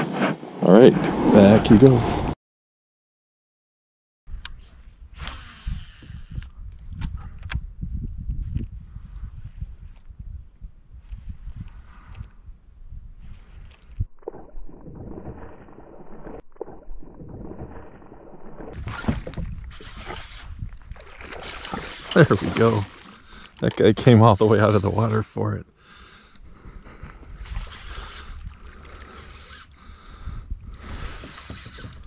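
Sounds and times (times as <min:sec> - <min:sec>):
wind rumbling on microphone: 0:04.3 - 0:24.4, 0:26.4 - 0:32.0
water lapping against kayak: 0:14.2 - 0:25.4, 0:26.4 - 0:32.0.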